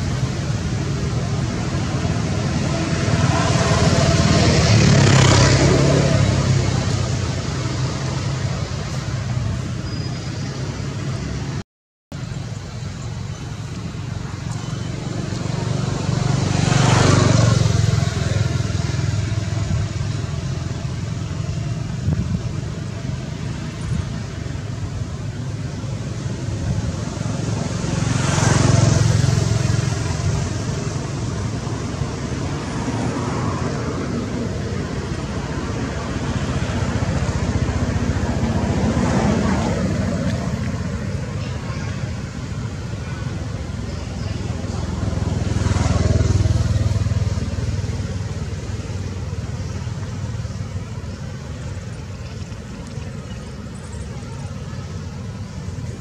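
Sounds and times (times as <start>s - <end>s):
steady low traffic rumble: 0.0s - 56.0s
vehicles passing: 0.0s - 56.0s.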